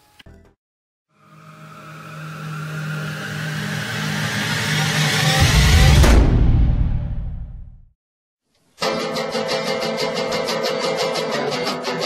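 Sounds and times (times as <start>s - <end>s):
acoustic guitar strumming: 8.8s - 12.0s.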